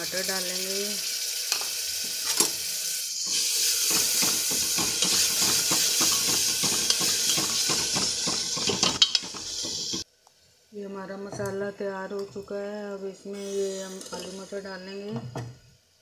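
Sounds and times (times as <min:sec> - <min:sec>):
food sizzling in a pot: 0:00.0 - 0:10.1, 0:13.3 - 0:15.0.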